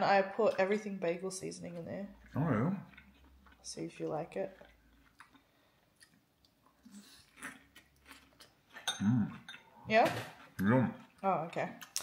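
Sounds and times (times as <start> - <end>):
chewing salad: 1.7 - 12.0.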